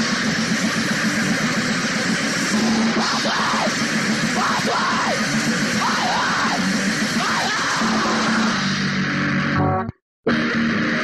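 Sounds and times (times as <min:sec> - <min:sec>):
punk band playing: 0:00.0 - 0:11.0.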